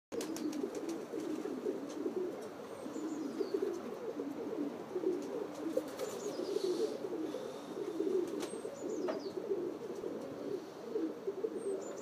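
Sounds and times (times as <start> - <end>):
pigeons cooing: 0.2 - 12.0.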